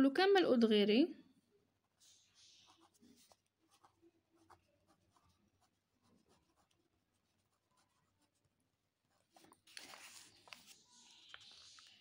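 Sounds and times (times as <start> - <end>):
pen writing on paper: 1.8 - 9.6.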